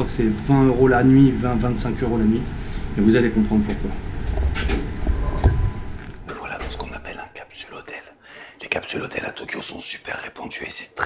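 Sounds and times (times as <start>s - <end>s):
man whispering: 6.3s - 11.0s.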